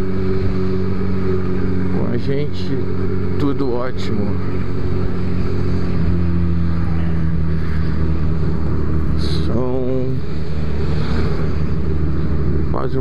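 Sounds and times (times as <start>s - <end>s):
motorcycle engine cruising: 0.0s - 13.0s.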